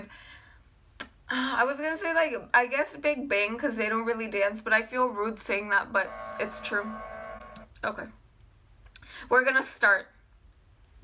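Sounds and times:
woman speaking: 0:01.3 - 0:07.1, 0:07.8 - 0:08.2
steady held tone: 0:06.0 - 0:07.8.

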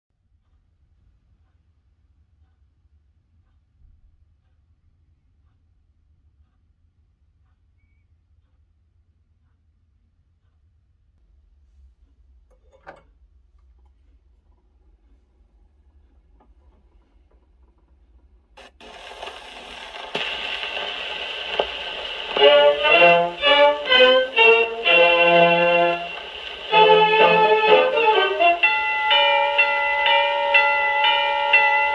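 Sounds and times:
soft record ticks: 0:00.3 - 0:11.3, 0:12.0 - 0:31.9
faint high whistle-like tone: 0:07.8 - 0:08.1
record surface noise rumble: 0:10.8 - 0:31.9.

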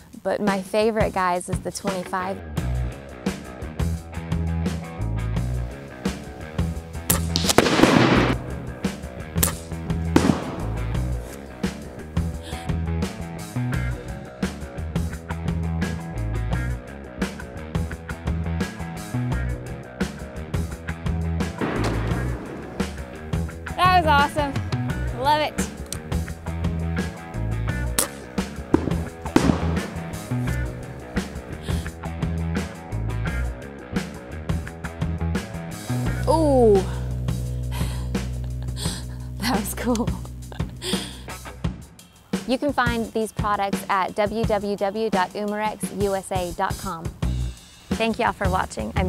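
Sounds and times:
rock music: 0:01.8 - 0:43.6, 0:47.1 - 0:49.0
loud crackling burst: 0:07.1 - 0:11.7, 0:21.6 - 0:23.8, 0:28.0 - 0:31.8
target bang: 0:07.4 - 0:08.8, 0:10.2 - 0:11.1, 0:21.6 - 0:23.4, 0:28.8 - 0:30.5.

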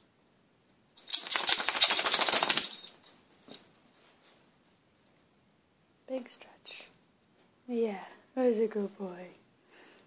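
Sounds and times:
collar tags rattling: 0:01.0 - 0:03.8.

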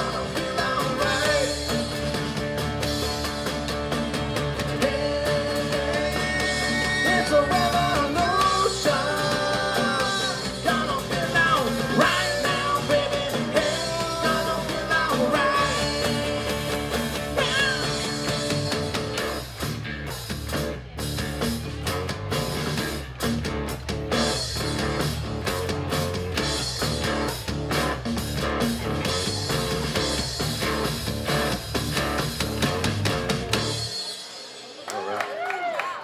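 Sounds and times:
drum kit beat: 0:00.0 - 0:35.2
guitar: 0:00.0 - 0:36.0
live band playing: 0:00.0 - 0:36.0.

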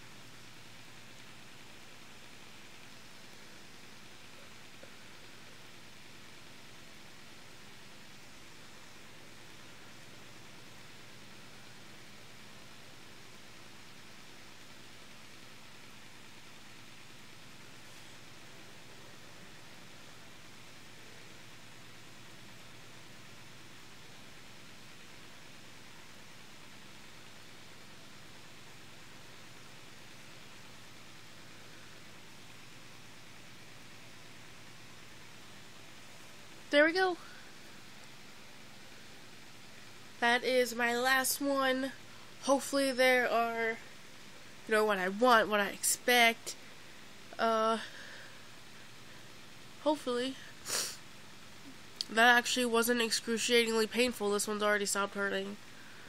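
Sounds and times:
faint steady hiss: 0:00.0 - 0:56.0.

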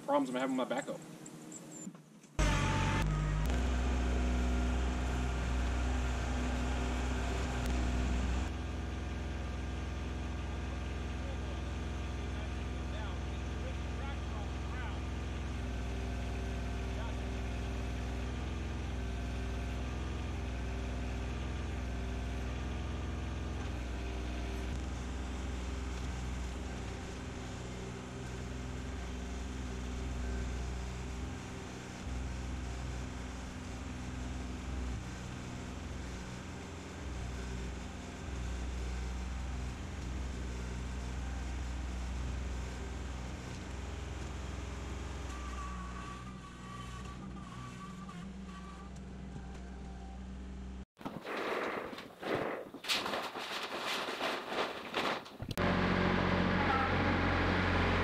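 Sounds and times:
tractor diesel engine running: 0:02.4 - 0:50.9, 0:55.4 - 0:58.0.

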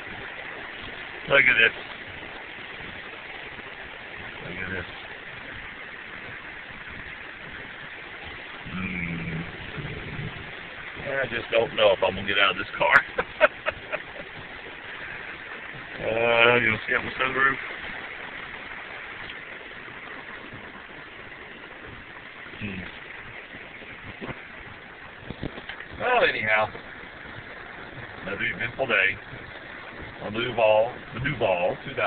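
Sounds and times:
heavy rain on car roof: 0:00.0 - 0:32.0.

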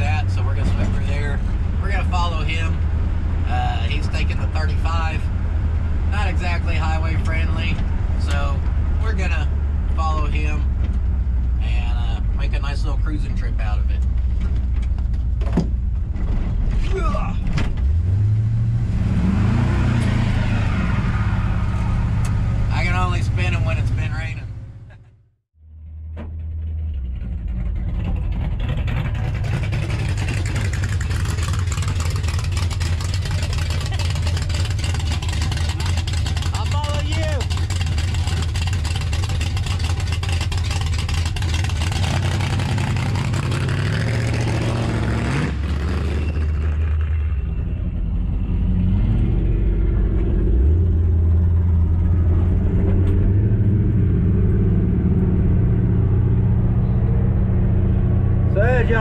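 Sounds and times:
truck engine pulling away: 0:17.8 - 0:24.9, 0:25.6 - 0:59.0
truck engine idling: 0:21.2 - 0:42.0.

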